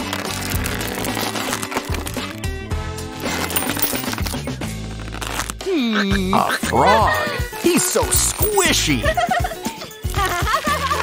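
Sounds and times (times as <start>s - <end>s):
background music: 5.6s - 11.0s.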